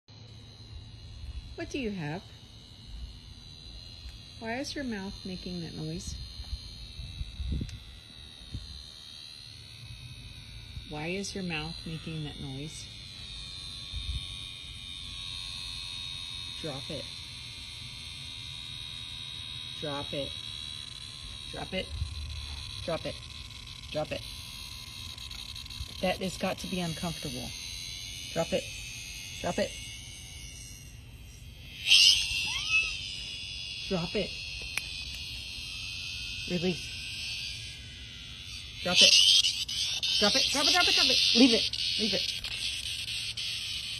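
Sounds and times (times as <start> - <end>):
high thin buzzing whine: 0.1 - 43.9.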